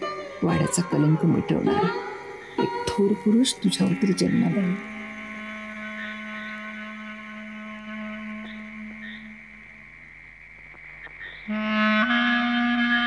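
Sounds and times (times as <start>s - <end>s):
soft high tones: 0.0s - 7.2s
low sustained note: 0.0s - 10.0s.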